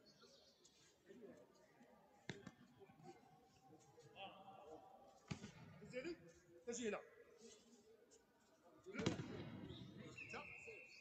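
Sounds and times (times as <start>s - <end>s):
faint murmuring voices: 0.0s - 11.0s.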